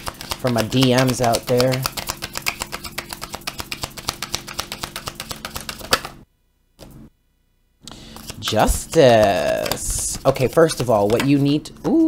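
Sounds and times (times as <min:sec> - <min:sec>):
cards being shuffled: 0:00.0 - 0:06.2, 0:07.8 - 0:12.0.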